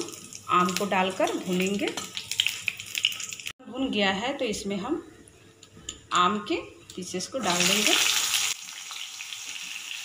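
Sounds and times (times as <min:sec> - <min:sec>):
spices sizzling in hot oil: 0:00.0 - 0:03.6, 0:06.9 - 0:10.0.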